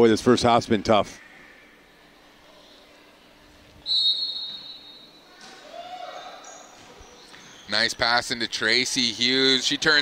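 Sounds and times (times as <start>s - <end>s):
crowd and court sounds: 0.0s - 10.0s
referee's whistle: 3.8s - 5.2s.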